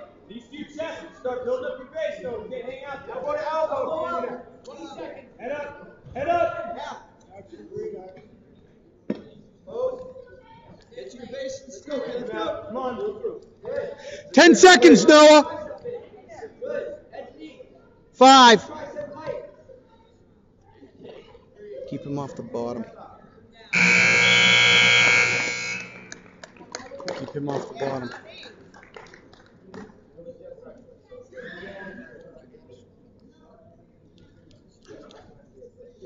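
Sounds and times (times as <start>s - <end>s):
man calling out: 14.3s - 15.4s, 18.2s - 18.6s
scoreboard buzzer: 23.8s - 26.5s.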